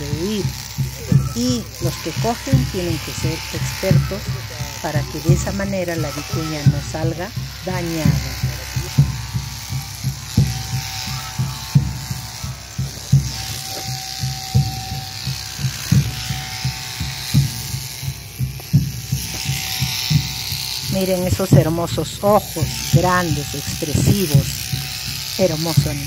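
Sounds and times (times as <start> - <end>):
electric shears humming: 0.0 - 26.0
low thumps: 0.0 - 26.0.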